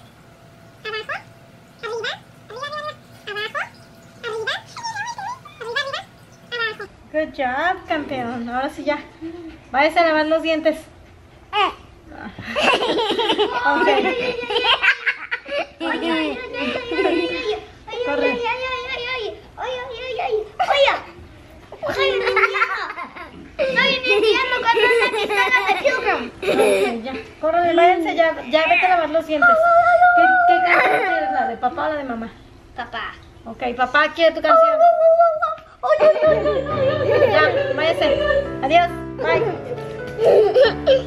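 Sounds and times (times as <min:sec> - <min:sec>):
children shouting and squealing: 0:03.5 - 0:06.9
small dog whining: 0:03.5 - 0:06.9.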